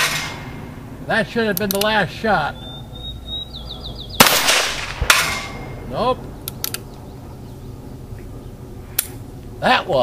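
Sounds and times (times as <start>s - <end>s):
faint outdoor background: 0.0s - 10.0s.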